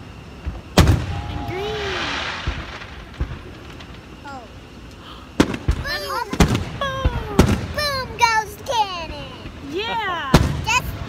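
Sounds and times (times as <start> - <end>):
fireworks bursting: 0.0 - 11.0
firework sharp boom: 0.4 - 4.5, 5.4 - 8.4, 10.3 - 11.0.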